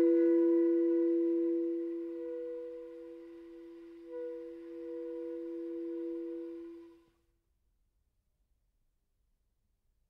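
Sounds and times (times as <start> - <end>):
chamber ensemble held tones: 0.0 - 7.0.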